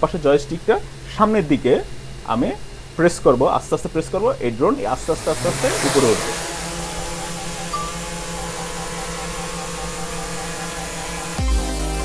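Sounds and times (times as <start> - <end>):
drone motors humming: 0.1 - 12.0
electronic music bass hit: 7.7 - 12.0.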